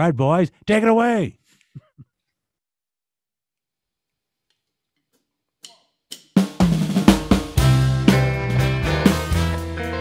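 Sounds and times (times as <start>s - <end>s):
snare and bass drum hits: 6.4s - 9.5s
brass band playing: 7.3s - 10.0s.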